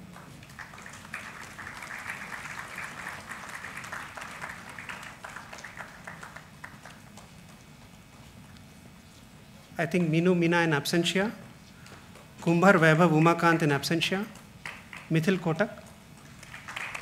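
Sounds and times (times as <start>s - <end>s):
audience clapping: 0.0s - 7.4s, 12.5s - 17.0s.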